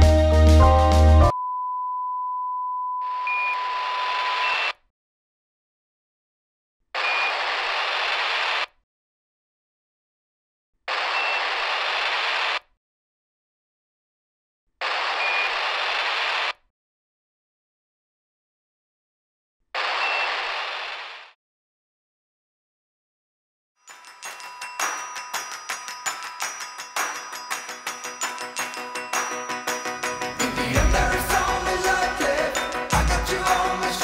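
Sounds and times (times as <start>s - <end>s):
music: 0.0s - 1.3s, 23.9s - 34.0s
steady test-tone beep: 1.3s - 4.7s
radio static hiss: 7.0s - 8.7s
short high radio tone: 19.8s - 20.8s.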